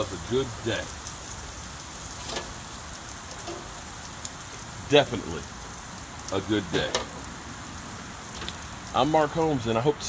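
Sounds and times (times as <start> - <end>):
chicken sizzling on grill: 0.0 - 10.0.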